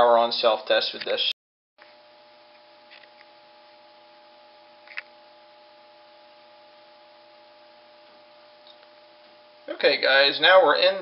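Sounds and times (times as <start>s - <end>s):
computer hum: 1.8s - 11.0s.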